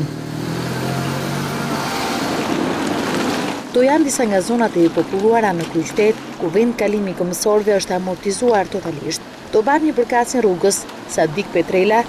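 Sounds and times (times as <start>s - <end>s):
car engine hum: 0.0s - 3.8s
tyre noise on gravelly road: 0.0s - 12.0s.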